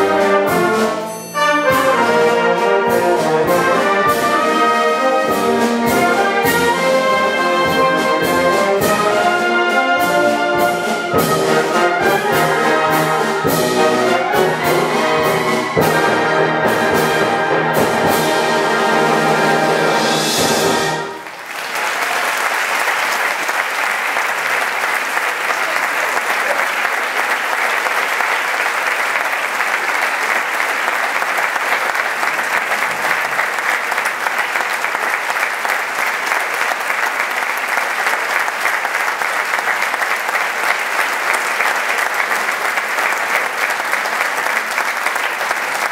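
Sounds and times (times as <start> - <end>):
audience applauding: 21.0 - 45.9.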